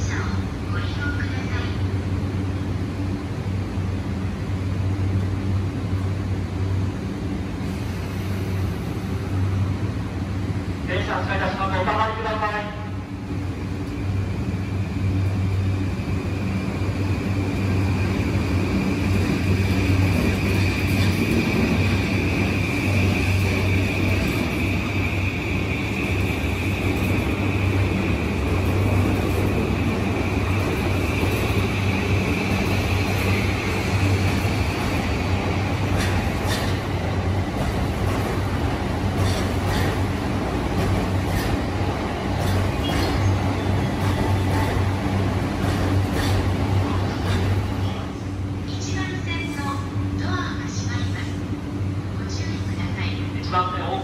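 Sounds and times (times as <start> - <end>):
electric train accelerating: 13.0 - 49.0
train cars clicking: 25.9 - 48.1.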